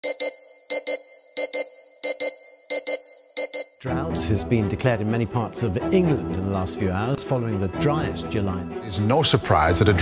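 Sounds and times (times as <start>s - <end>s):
electronic double beeps: 0.0s - 3.8s.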